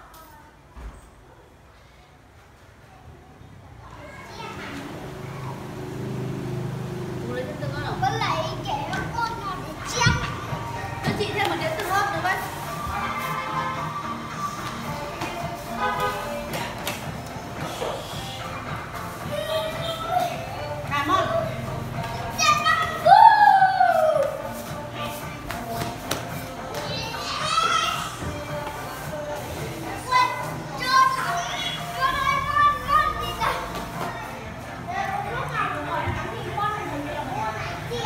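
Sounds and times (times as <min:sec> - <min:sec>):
children playing and calling out: 0:03.0 - 0:16.9, 0:17.6 - 0:38.0
background music: 0:05.0 - 0:38.0.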